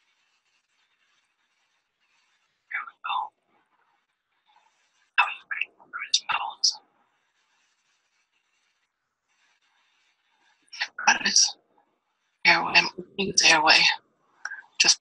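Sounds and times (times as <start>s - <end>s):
person whispering: 2.7s - 3.3s, 5.2s - 6.8s, 10.8s - 11.5s, 12.5s - 15.0s.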